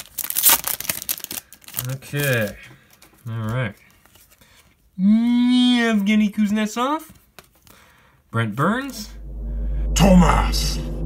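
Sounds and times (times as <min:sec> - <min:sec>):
foil wrapper tearing and crinkling: 0:00.0 - 0:02.6.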